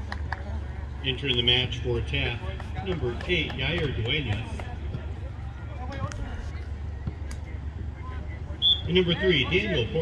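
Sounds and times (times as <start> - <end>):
distant players' voices: 0.0 - 10.0.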